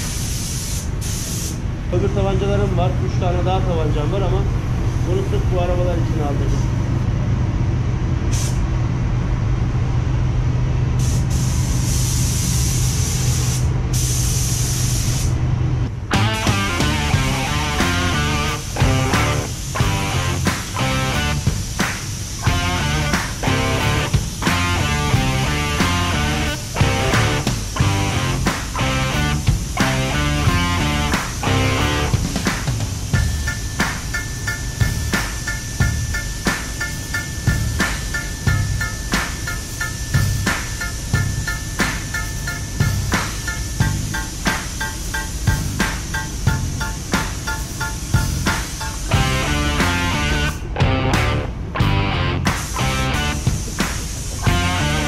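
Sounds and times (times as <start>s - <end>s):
spray gun air hissing: 0.0s - 1.7s, 8.3s - 8.6s, 11.0s - 15.4s, 16.9s - 49.2s, 52.6s - 54.8s
steady low hum: 0.0s - 55.0s
music with steady beat: 16.1s - 55.0s.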